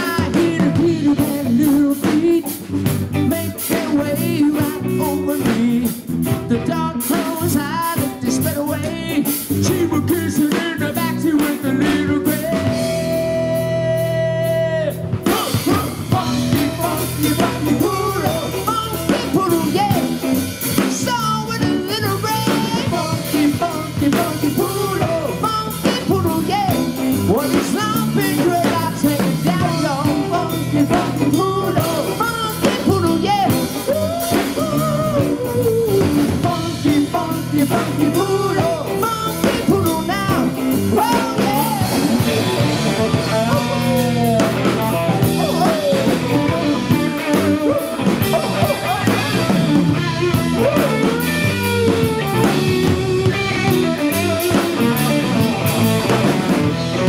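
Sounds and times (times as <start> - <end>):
drum kit: 0.0 - 57.0
electric bass: 0.0 - 57.0
electric guitar lead: 0.0 - 57.0.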